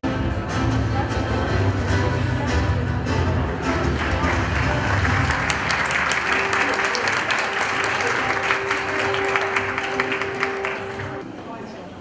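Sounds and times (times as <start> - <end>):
music: 0.0 - 11.3
audience applauding: 3.9 - 11.2.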